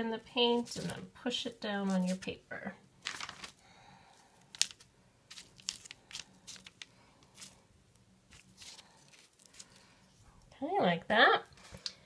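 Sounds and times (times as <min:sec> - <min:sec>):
paper crinkling: 0:00.4 - 0:01.1, 0:01.8 - 0:02.3, 0:03.0 - 0:07.6, 0:08.3 - 0:10.0.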